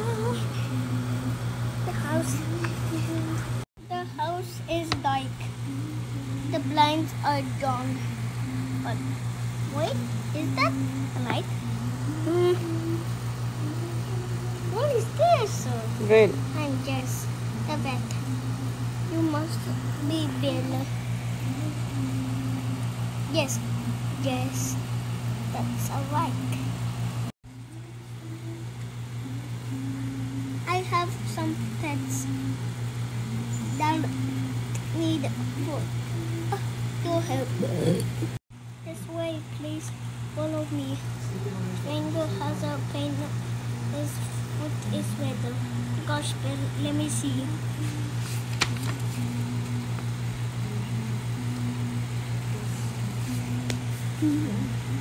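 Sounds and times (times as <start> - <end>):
low machine hum: 0.0 - 55.0.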